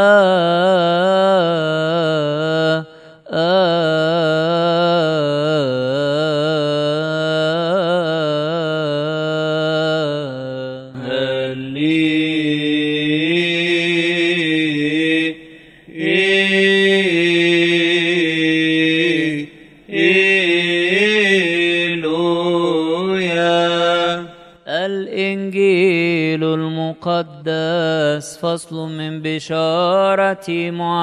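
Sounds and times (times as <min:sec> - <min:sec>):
man chanting: 0:00.0 - 0:31.0.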